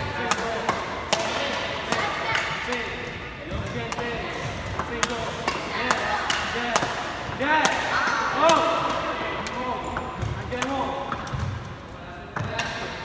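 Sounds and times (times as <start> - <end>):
badminton racket hitting shuttlecock: 0.0 - 11.5.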